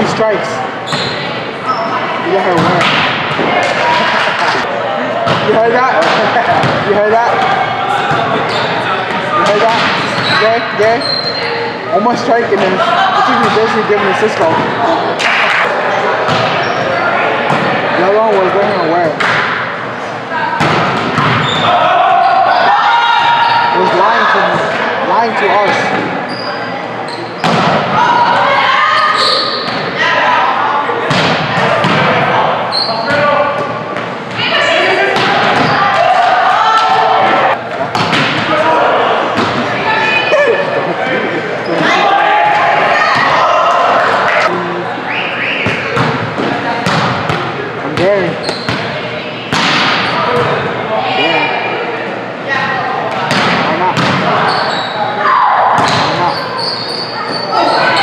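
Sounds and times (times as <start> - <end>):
players calling out: 0.0 - 58.0
volleyball hits and bounces: 2.5 - 4.6, 5.2 - 8.4, 14.5 - 16.6, 20.6 - 21.6, 27.4 - 28.0, 31.0 - 32.2, 37.7 - 38.6, 45.6 - 48.9, 49.5 - 50.6, 53.1 - 54.4, 55.7 - 56.3.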